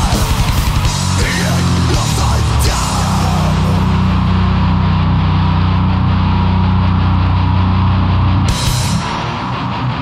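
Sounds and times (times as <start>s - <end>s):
distorted heavy metal chord: 0.0s - 10.0s.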